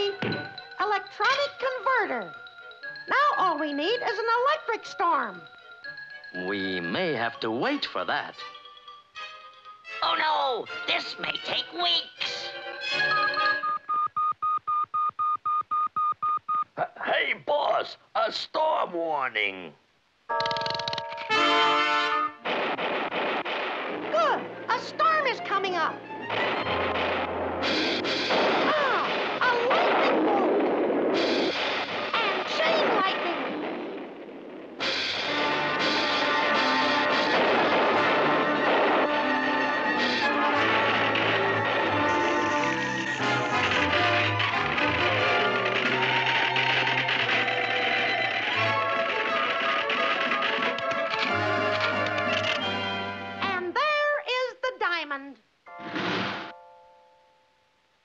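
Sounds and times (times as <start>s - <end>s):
busy cartoon music: 0.0s - 13.9s, 20.4s - 22.5s, 23.7s - 33.6s, 34.8s - 53.8s
crashing storm effects: 22.4s - 49.3s.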